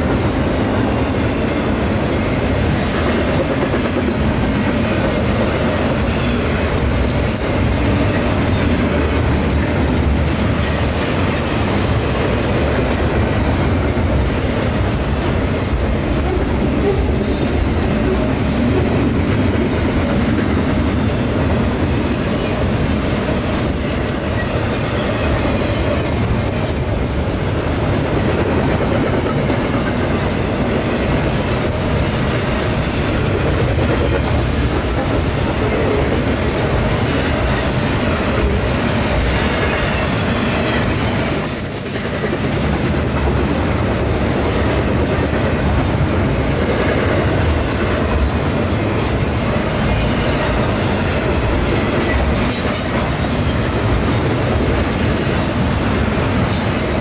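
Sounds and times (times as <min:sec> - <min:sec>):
freight train wheels rolling: 0:00.0 - 0:57.0.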